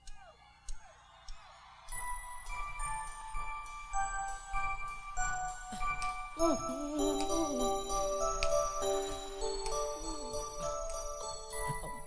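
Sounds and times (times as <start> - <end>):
bell-like chiming music: 1.9 - 12.0.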